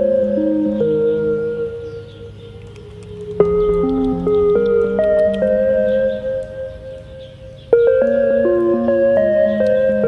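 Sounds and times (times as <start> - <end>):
bell-like music notes: 3.3 - 10.0.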